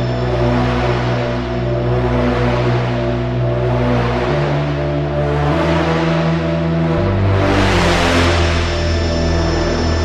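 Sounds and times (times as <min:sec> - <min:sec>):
low synthesizer drone: 0:00.0 - 0:10.0.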